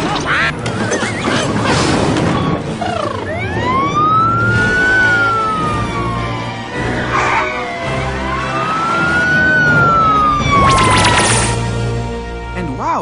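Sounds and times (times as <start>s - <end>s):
wobbly cartoon squeaks: 0.0s - 3.2s
background music: 0.0s - 13.0s.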